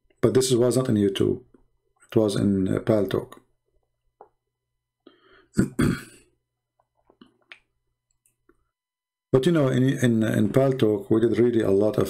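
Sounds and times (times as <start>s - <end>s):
man clearing his throat: 5.5s - 6.3s.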